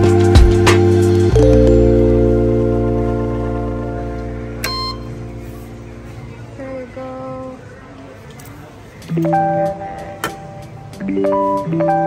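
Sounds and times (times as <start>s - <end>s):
background music: 0.0s - 7.1s, 9.0s - 12.0s
short electronic beep: 4.6s - 5.2s.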